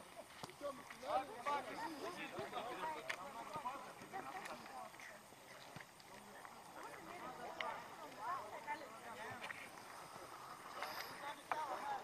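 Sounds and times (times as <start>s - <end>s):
players talking and calling out: 0.0s - 12.0s.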